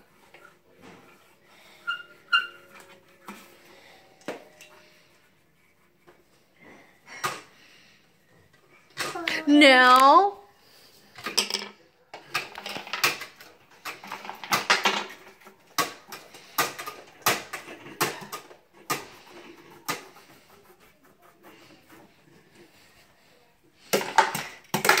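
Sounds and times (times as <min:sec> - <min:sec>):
crayons and toy car tapping: 0:11.2 - 0:20.4, 0:23.8 - 0:25.0.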